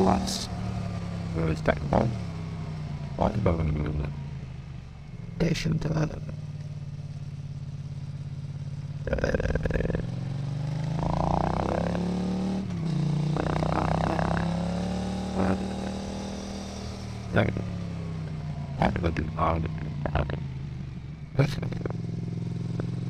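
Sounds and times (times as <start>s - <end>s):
motorcycle engine hum: 0.0s - 23.0s
warbling voice-like babble: 13.4s - 14.5s.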